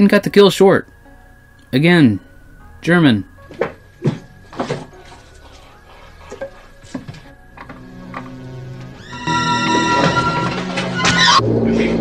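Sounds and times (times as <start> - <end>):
loud sustained orchestral chord: 0.5 - 3.6, 7.9 - 12.0.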